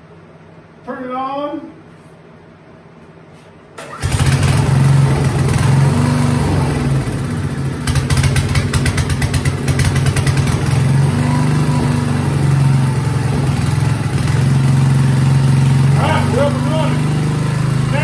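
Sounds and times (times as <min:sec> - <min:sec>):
generator engine running: 0:03.8 - 0:18.0.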